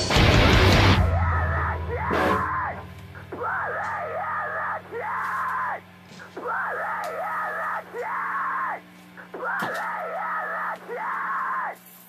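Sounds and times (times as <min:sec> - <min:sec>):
low amplifier hum: 0:00.0 - 0:11.6.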